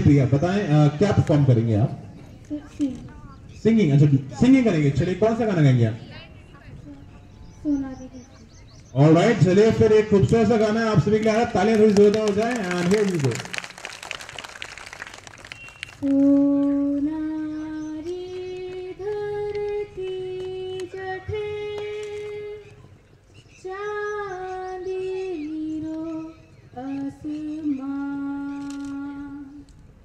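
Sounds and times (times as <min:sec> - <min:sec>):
faint background hum: 0:00.0 - 0:30.0
girl singing: 0:16.0 - 0:22.6, 0:23.6 - 0:29.7.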